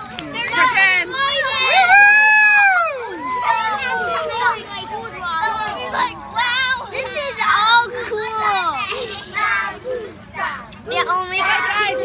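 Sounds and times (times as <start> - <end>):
young children talking: 0.0 - 12.0.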